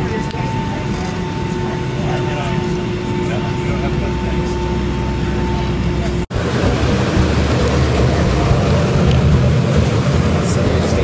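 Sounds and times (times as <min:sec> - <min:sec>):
airliner cabin hum: 0:00.0 - 0:11.0
low cabin rumble: 0:00.0 - 0:11.0
steady whining tones: 0:00.0 - 0:11.0
indistinct voices: 0:05.4 - 0:11.0.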